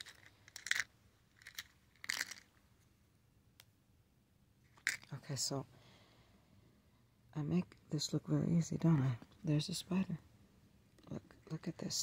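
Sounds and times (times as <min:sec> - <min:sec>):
plastic nails clicking and scraping: 0:00.0 - 0:02.6, 0:04.7 - 0:05.1.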